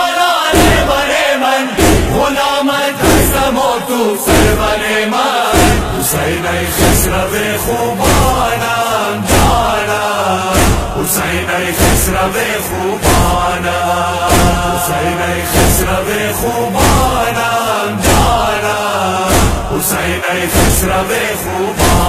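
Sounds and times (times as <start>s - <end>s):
men chanting a lament: 0.0s - 22.0s
heavy rhythmic thumps: 0.5s - 1.2s, 1.8s - 22.0s.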